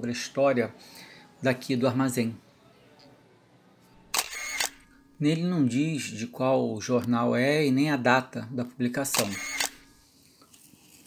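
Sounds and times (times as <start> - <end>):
camera shutter clicks: 4.1 - 5.0, 9.1 - 9.9.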